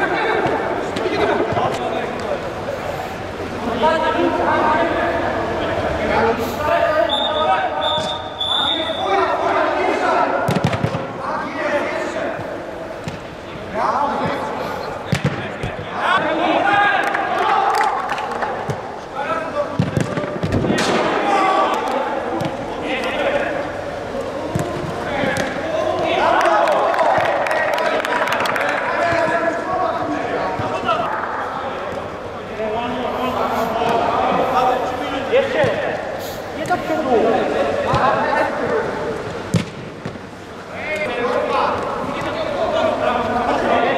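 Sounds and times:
players shouting: 13.6s - 33.0s.

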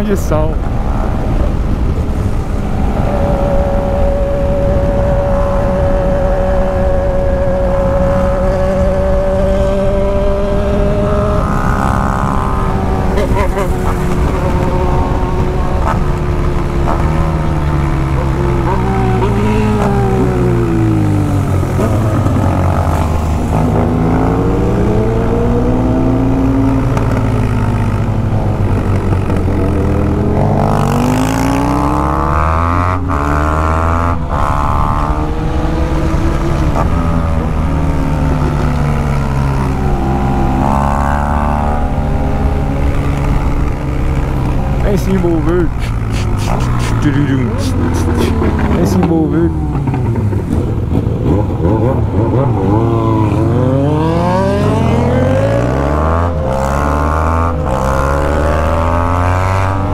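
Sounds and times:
wind noise: 0.0s - 59.9s
motorcycle engine under way: 2.7s - 59.9s.

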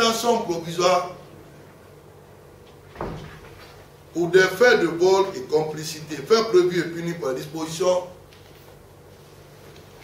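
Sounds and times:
faint room noise: 0.0s - 10.0s
dull thump: 3.0s - 3.5s.

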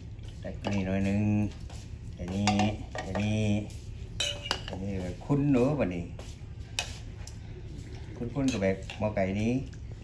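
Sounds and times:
metal spoon clinking on cup: 4.2s - 4.8s.

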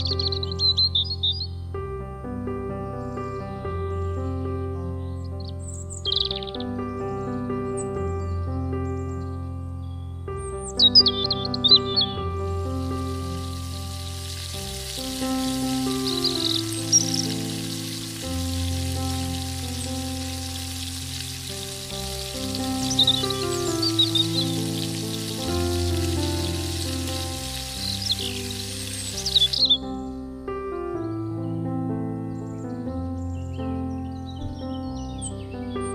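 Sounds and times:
birds chirping: 0.0s - 1.7s, 2.8s - 30.2s, 32.2s - 35.9s
background music: 0.0s - 35.9s
dough sizzling in hot oil: 12.6s - 29.7s.

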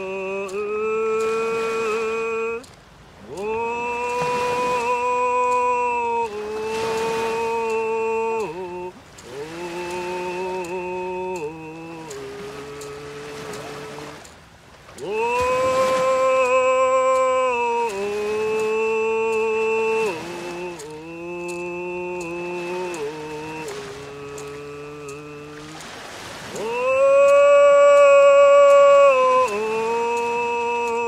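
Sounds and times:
man singing unaccompanied: 0.0s - 31.0s.

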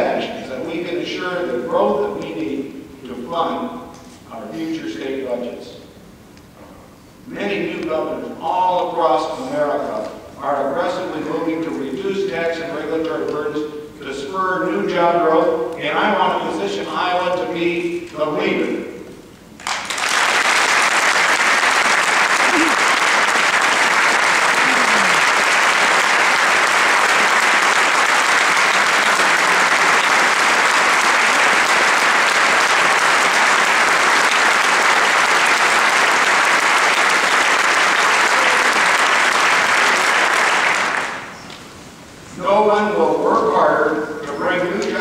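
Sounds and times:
audience applause: 19.6s - 41.4s.

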